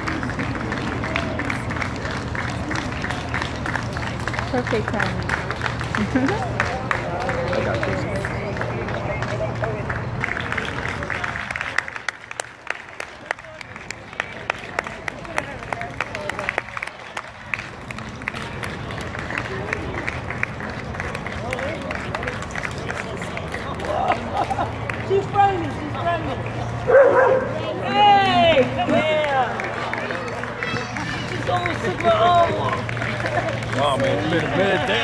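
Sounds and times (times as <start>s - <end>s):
crowd voices: 0.0s - 35.0s.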